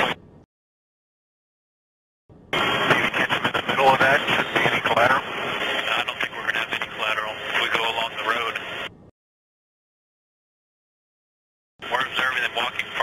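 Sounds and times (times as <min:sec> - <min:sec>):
man's voice over radio: 0:02.7 - 0:08.8, 0:11.8 - 0:13.0.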